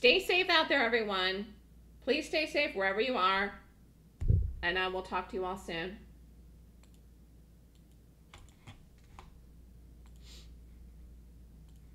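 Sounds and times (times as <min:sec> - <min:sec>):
low room hum: 0:00.0 - 0:11.9.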